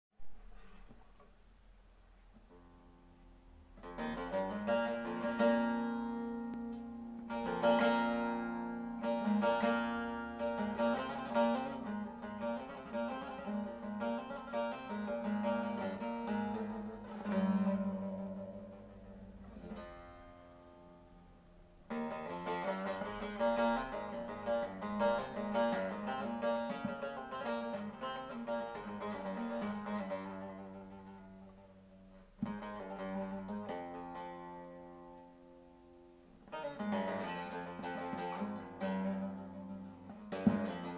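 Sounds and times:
plucked and strummed saz melody: 2.2s - 40.9s.

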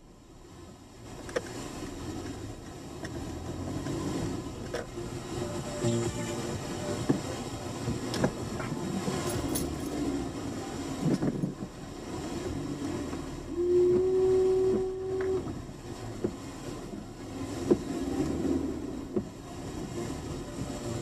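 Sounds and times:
car cabin noise: 0.0s - 21.0s.

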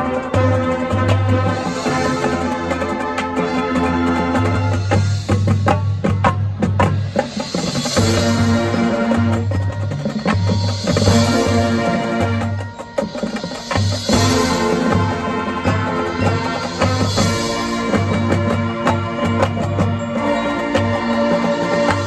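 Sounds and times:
marching band playing: 0.0s - 22.0s
sharp percussion strokes: 0.0s - 22.0s.

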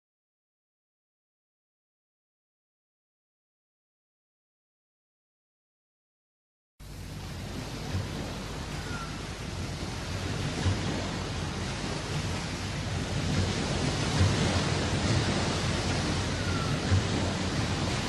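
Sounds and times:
steady rushing noise: 6.8s - 18.0s.

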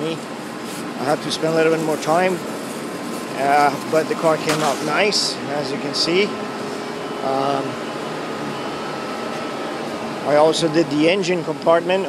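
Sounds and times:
machinery whirring: 0.0s - 12.0s.

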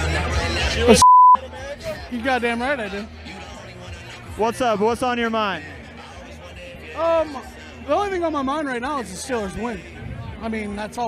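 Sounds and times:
background music: 0.0s - 11.0s
censor beep: 1.0s - 1.4s.

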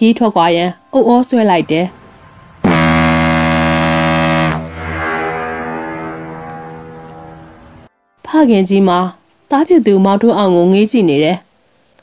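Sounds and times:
low horn-like tone: 1.9s - 7.9s.

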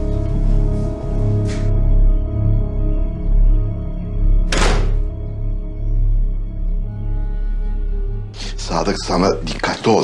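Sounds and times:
dramatic music with pulsing beat: 0.0s - 9.3s
door pushed shut: 4.5s - 5.1s.

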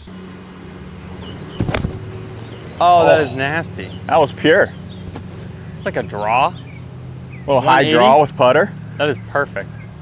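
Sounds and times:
low motor hum: 0.0s - 10.0s
club striking golf ball: 1.5s - 2.2s.

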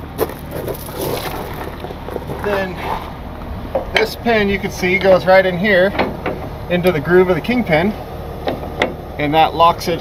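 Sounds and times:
metal scraping: 0.0s - 7.0s
low engine hum: 0.0s - 10.0s
metallic knock: 5.9s - 6.6s.

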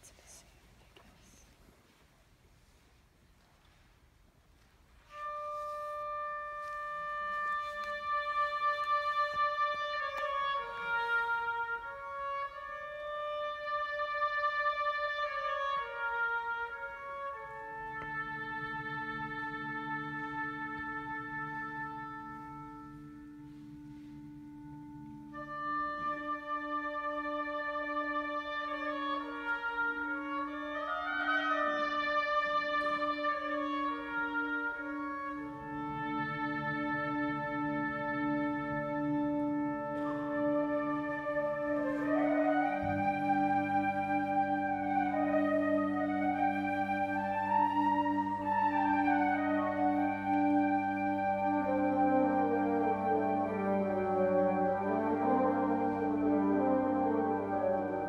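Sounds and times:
wind ensemble playing: 4.7s - 58.0s.

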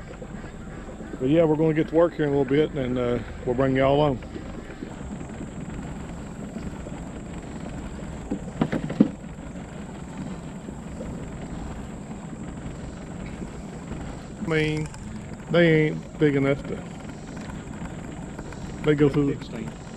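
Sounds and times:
boat motor rumbling: 0.0s - 19.9s
wind on microphone: 0.0s - 19.9s.

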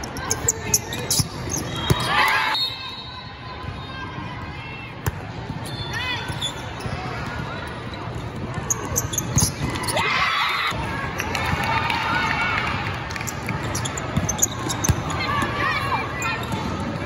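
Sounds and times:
sneaker squeaks on court floor: 0.1s - 3.1s, 5.6s - 10.0s, 13.6s - 16.9s.

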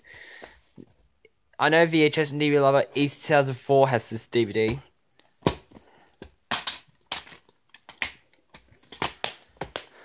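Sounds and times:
plastic cases clicking and snapping: 5.2s - 10.0s.

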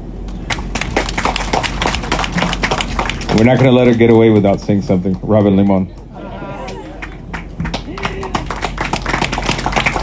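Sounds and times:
crowd applauding: 0.5s - 10.0s.

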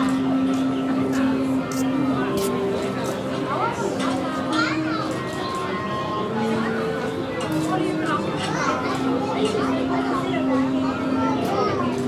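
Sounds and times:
crowd chatter: 0.0s - 12.0s
children's voices: 1.7s - 12.0s.

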